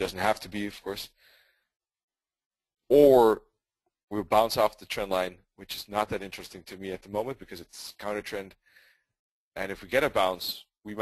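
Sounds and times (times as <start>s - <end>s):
man speaking: 0.0s - 1.1s, 2.9s - 3.5s, 4.1s - 8.6s, 9.6s - 11.0s
faint breath: 1.1s - 1.8s, 8.6s - 9.2s.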